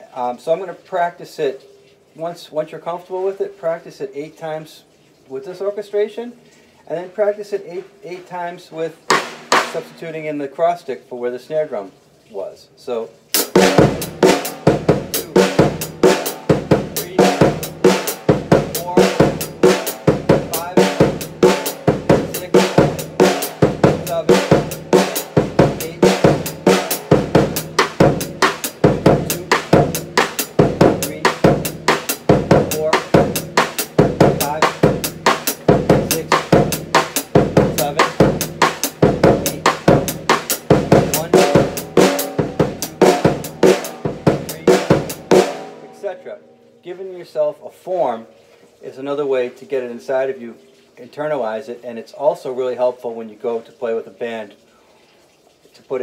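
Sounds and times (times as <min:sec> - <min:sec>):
drum kit funk groove: 0:09.1 - 0:10.0, 0:13.4 - 0:45.9.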